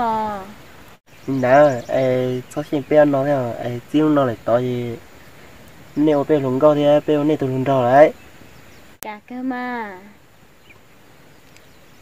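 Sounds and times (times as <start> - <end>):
woman talking: 0.0 - 0.6, 9.0 - 10.2
man talking: 1.3 - 5.0, 5.9 - 8.2.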